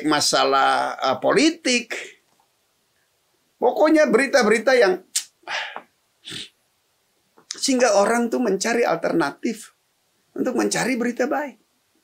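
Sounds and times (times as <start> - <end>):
man breathing and mouth noises: 5.2 - 6.6.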